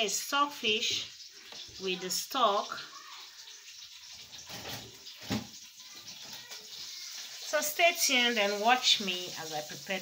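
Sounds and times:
fish stock bubbling in a pot: 0:00.0 - 0:10.0.

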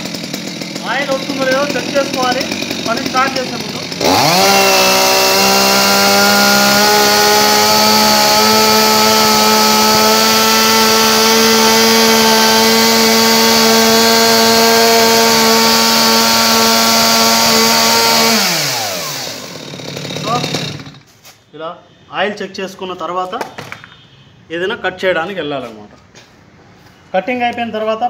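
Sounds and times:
chainsaw engine running: 0:00.0 - 0:21.1.

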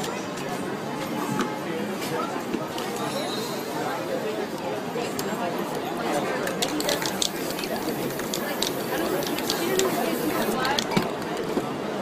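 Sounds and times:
voices murmuring: 0:01.6 - 0:12.0
spray paint can hissing: 0:06.6 - 0:11.0.

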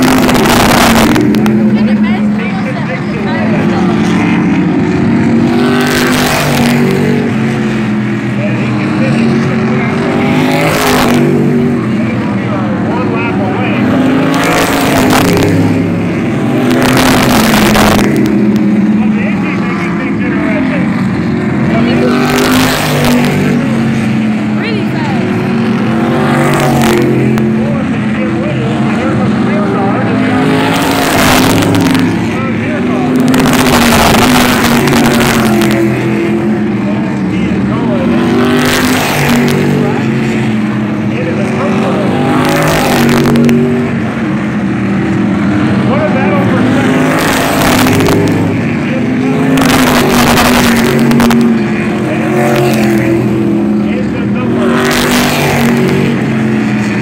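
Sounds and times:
cars passing by: 0:00.0 - 0:57.0
race car engines roaring: 0:00.0 - 0:57.0.

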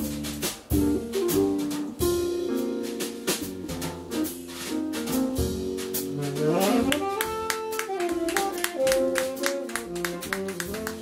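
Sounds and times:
drum kit cymbal strokes: 0:00.0 - 0:06.9
acoustic piano: 0:00.0 - 0:11.0
walking double bass: 0:00.0 - 0:11.0.

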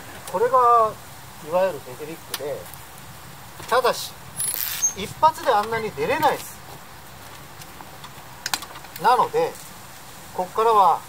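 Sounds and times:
sharp light bicycle clicks: 0:02.3 - 0:02.8, 0:04.4 - 0:09.7.

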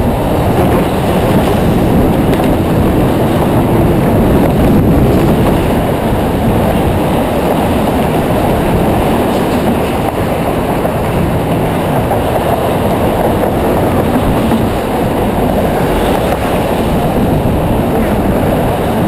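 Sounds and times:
car traffic: 0:00.0 - 0:19.0
wind buffeting microphone: 0:00.0 - 0:19.0.

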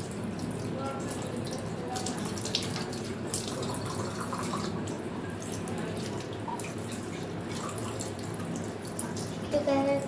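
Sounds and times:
tap water running into basin: 0:00.0 - 0:10.0.

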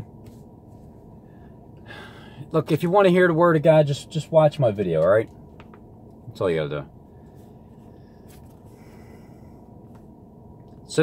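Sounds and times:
car cabin low rumble: 0:00.0 - 0:11.0
man breathing in: 0:01.2 - 0:02.5, 0:07.1 - 0:09.8.

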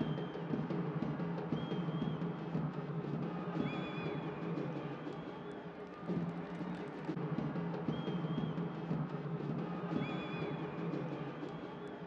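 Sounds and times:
fans beating drums: 0:00.0 - 0:05.4, 0:06.0 - 0:11.8.

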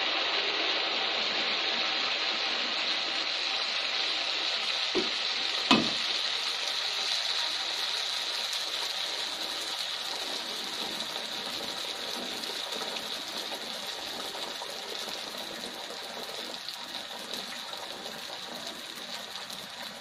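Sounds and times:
cake sizzling in hot oil: 0:00.0 - 0:20.0.

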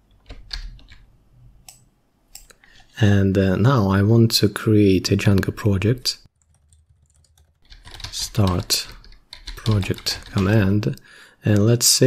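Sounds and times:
keyboard keystrokes: 0:06.4 - 0:10.6.

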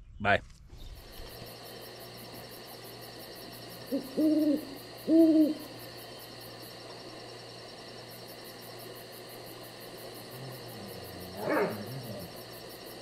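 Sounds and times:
faint hiss and hum: 0:00.8 - 0:13.0
low rough animal growl: 0:10.2 - 0:12.5.

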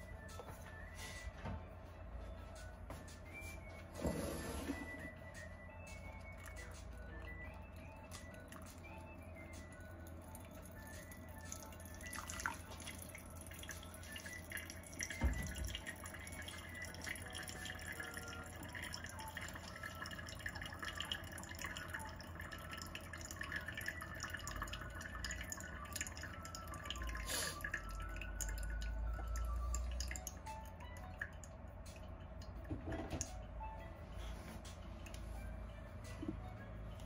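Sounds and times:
tea dripping through filter: 0:04.8 - 0:33.6, 0:34.2 - 0:37.0
hot water pouring from kettle: 0:10.3 - 0:30.4.

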